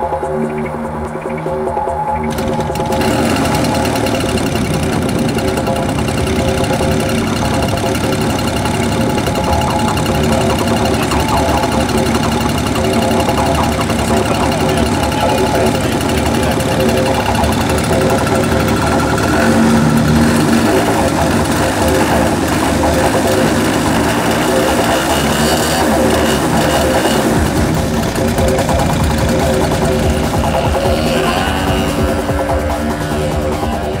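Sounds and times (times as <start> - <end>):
background music: 0.0 - 34.0
model plane engine running: 2.3 - 34.0.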